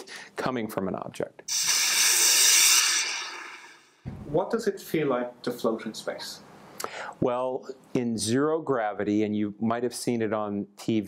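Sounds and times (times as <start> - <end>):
rocket rushing hiss: 1.5 - 4.1.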